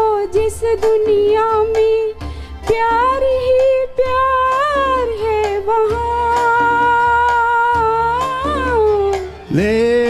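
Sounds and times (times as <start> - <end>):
backing track with pulsing bass: 0.1 - 10.0.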